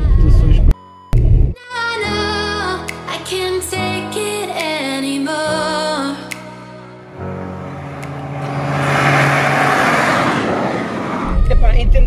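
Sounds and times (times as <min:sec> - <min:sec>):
car driving past: 0:07.1 - 0:11.6.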